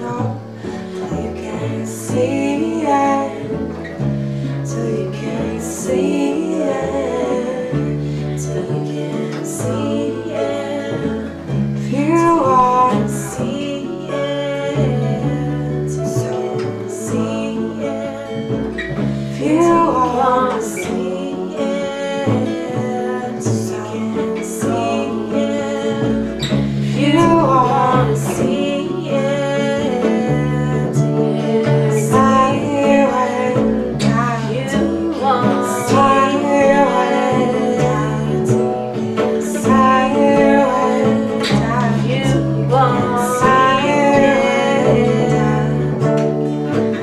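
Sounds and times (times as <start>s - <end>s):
bass notes: 0.0s - 47.0s
guitar: 0.0s - 47.0s
people singing: 0.0s - 47.0s.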